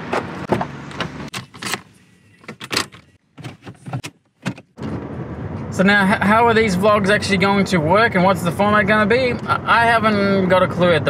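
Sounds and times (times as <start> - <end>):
car door clicks and knocks: 0.0 - 1.8, 2.5 - 4.9.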